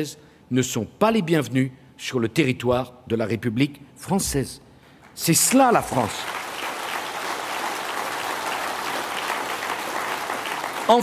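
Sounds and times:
audience applauding: 0:05.2 - 0:11.0.

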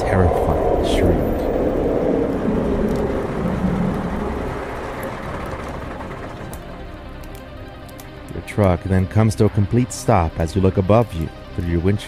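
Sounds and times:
noisy rumbling: 0:00.0 - 0:07.8
faint background music: 0:00.0 - 0:12.0.

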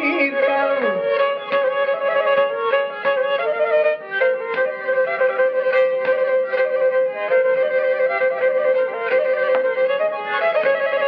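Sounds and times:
bowed lyra melody over drone: 0:00.0 - 0:11.0.

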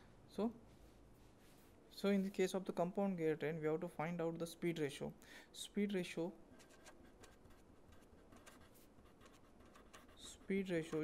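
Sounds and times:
pen scratching on paper: 0:06.6 - 0:11.0.

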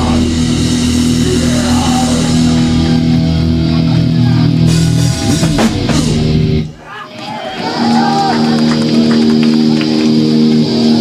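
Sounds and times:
punk band ringing chord: 0:00.0 - 0:06.8, 0:07.6 - 0:11.0.

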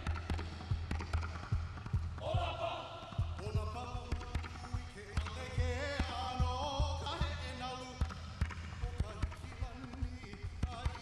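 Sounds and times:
hollow percussion strikes: 0:00.0 - 0:11.0
man chanting: 0:02.2 - 0:11.0.

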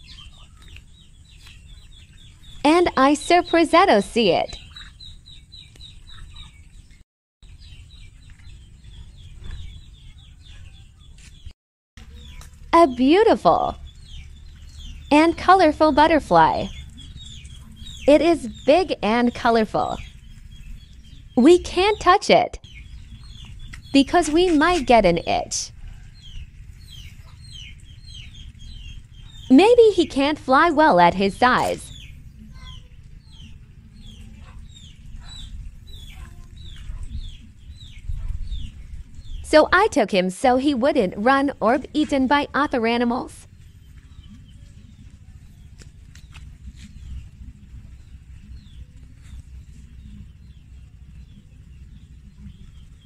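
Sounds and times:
bird chirping: 0:00.0 - 0:53.0
low steady rumble: 0:12.0 - 0:53.0
low rumble: 0:22.6 - 0:39.8.

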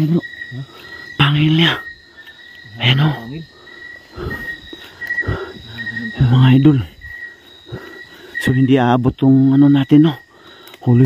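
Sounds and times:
crickets trilling: 0:00.0 - 0:11.0
man's voice: 0:05.3 - 0:07.0, 0:08.4 - 0:11.0.

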